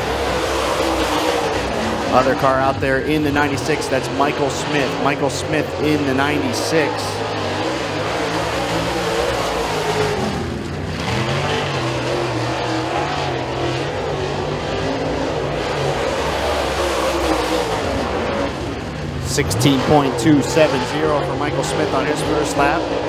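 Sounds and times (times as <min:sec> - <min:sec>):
race car engines running hard: 0:00.0 - 0:23.0.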